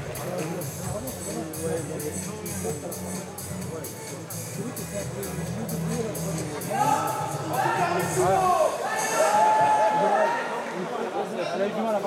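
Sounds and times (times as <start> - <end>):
man speaking indistinctly: 0.0 - 8.8.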